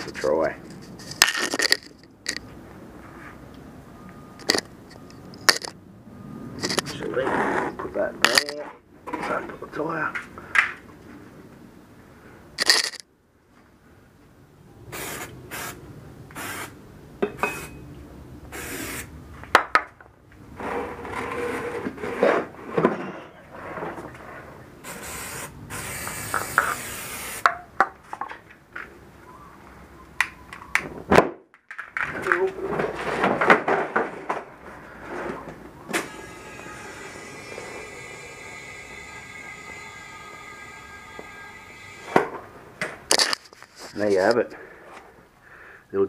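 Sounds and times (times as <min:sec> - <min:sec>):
knocks and scrapes on concrete: 0:20.5 - 0:24.5, 0:31.7 - 0:35.6, 0:42.9 - 0:45.0
aerosol can spraying: 0:24.9 - 0:27.5.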